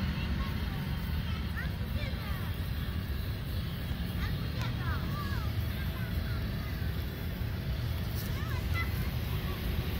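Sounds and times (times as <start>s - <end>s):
faint distant high voices: 0.0s - 9.9s
steady low rumble: 0.0s - 9.9s.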